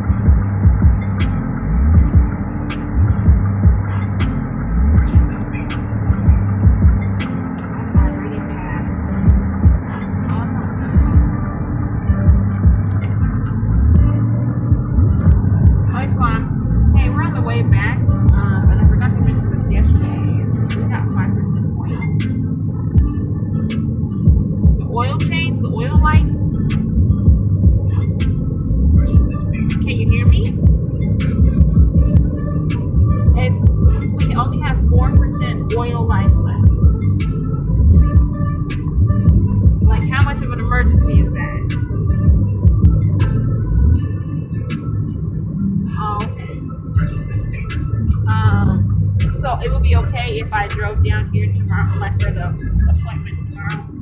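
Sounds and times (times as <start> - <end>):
car cabin rumble and hum: 0.0 - 54.0
muffled voices: 2.7 - 13.4, 15.0 - 22.6, 24.8 - 26.9, 27.8 - 32.1, 32.7 - 37.0, 44.0 - 54.0.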